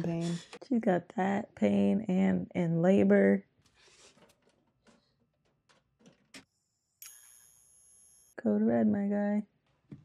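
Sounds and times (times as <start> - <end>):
high-pitched ringing tone: 6.5 - 8.4.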